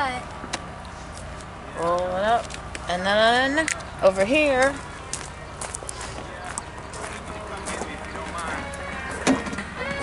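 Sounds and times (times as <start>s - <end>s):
footsteps on gravel: 0.9s - 9.2s
faint voices: 1.2s - 10.0s.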